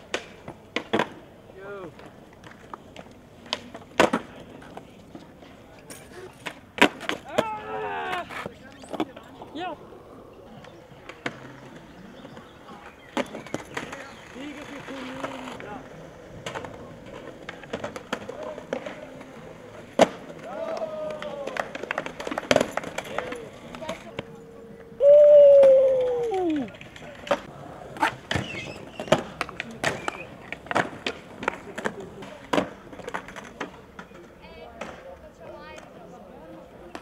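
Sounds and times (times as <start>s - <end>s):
skateboard clacks: 0.0s - 9.8s, 10.5s - 37.0s
skateboard trucks grinding: 0.0s - 37.0s
skateboard wheels rolling: 0.0s - 37.0s.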